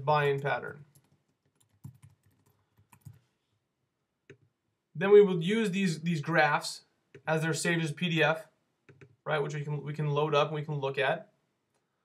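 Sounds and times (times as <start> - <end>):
faint keyboard typing: 0.2 - 3.4, 4.2 - 4.5, 8.8 - 9.2.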